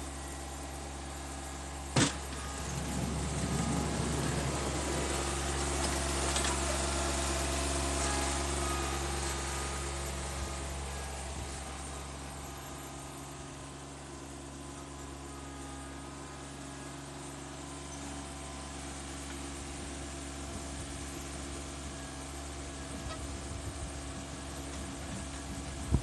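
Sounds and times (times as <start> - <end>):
mower diesel engine running: 0.0 - 26.0.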